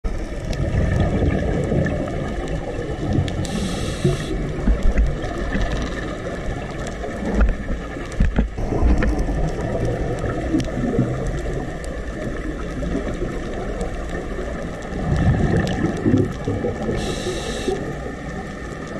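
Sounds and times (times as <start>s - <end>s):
bubbles gurgling: 0.1s - 18.9s
brief hiss: 3.4s - 4.4s, 17.0s - 17.8s
scuba regulator breathing: 3.4s - 4.4s, 16.9s - 17.9s.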